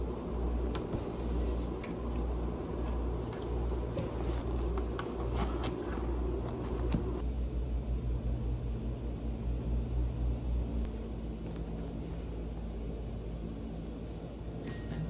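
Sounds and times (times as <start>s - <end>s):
low humming rumble: 0.0s - 15.0s.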